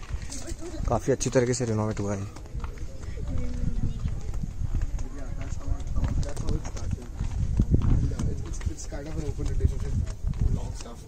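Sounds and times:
footsteps on stone path: 0.0s - 11.0s.

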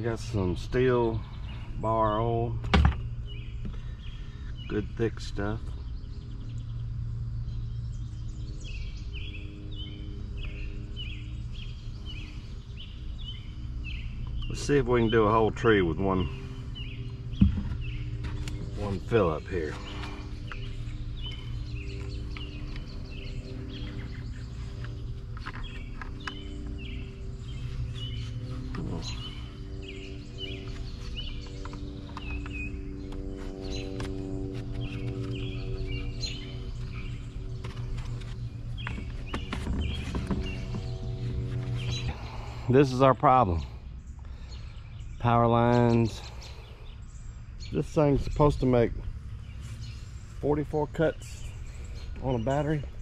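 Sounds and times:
low background hum: 0.0s - 53.0s
bird chirping high: 5.7s - 53.0s.

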